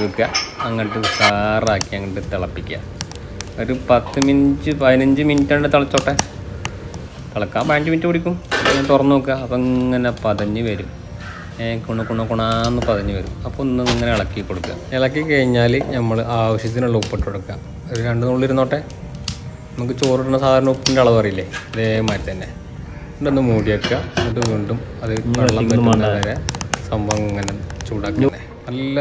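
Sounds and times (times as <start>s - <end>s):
man talking: 11.6s - 18.9s, 23.2s - 29.0s
person talking: 23.5s - 28.5s.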